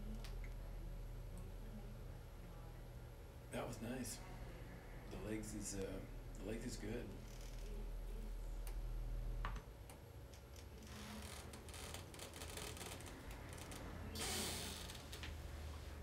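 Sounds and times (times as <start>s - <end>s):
deep vibration hum: 0.0s - 9.8s, 10.4s - 16.0s.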